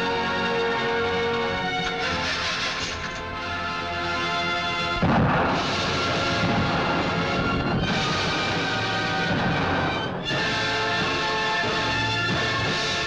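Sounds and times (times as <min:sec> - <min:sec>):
dramatic film score: 0:00.0 - 0:13.0
heavy rumble: 0:04.8 - 0:10.3
loud car explosion: 0:04.9 - 0:10.1.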